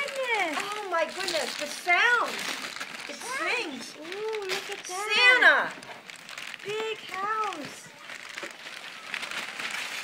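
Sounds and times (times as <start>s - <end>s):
wrapping paper crinkling: 0.0s - 10.0s.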